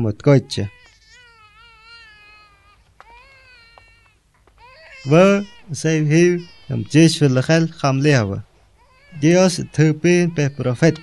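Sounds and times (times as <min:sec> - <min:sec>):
infant crying: 0:00.5 - 0:11.0.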